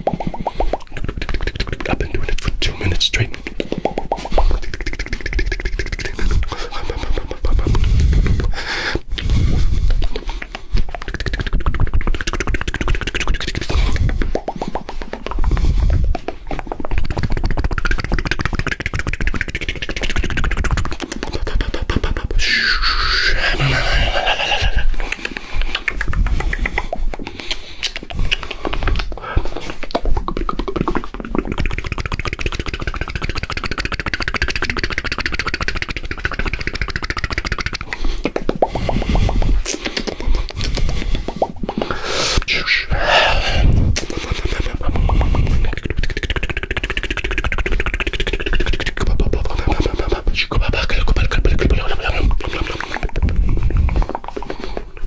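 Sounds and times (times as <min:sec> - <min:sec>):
mouth clicks pops and smacks: 0:00.0 - 0:55.0
short voiced sounds: 0:22.4 - 0:24.9.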